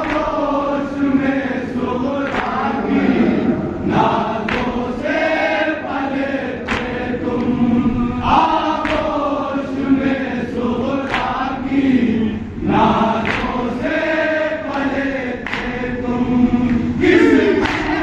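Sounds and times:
men chanting in chorus: 0.0 - 18.0
chest-beating slaps: 4.4 - 4.8.

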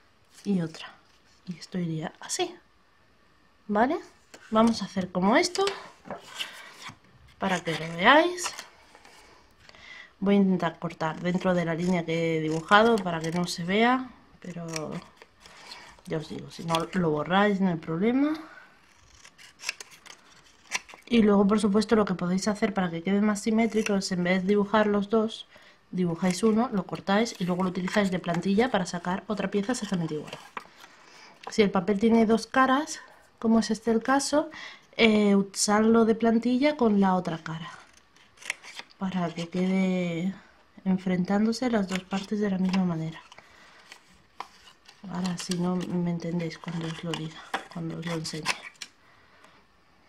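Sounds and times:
scissors snipping paper: 11.2 - 13.8, 14.5 - 17.1, 18.8 - 21.1, 44.9 - 48.9.

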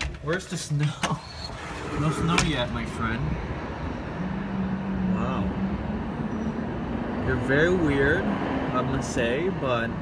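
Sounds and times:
city traffic rumble: 0.0 - 10.0.

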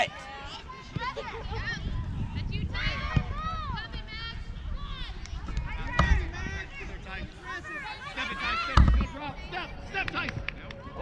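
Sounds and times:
girls shouting and calling out: 0.0 - 6.2
wind rumble on microphone: 0.8 - 7.7.

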